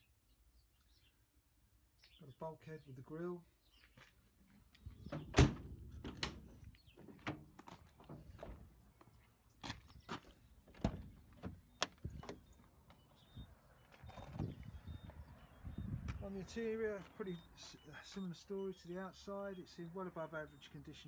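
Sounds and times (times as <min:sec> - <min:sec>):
van door shutting: 0:05.1 - 0:08.8, 0:10.7 - 0:12.5.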